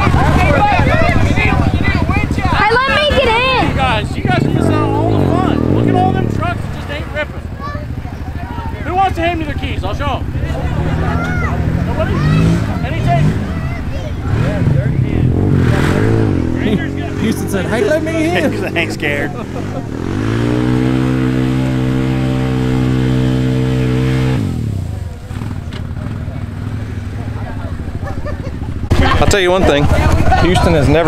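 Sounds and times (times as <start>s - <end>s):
atv engine revving: 0.0s - 31.0s
people's voices: 0.0s - 31.0s.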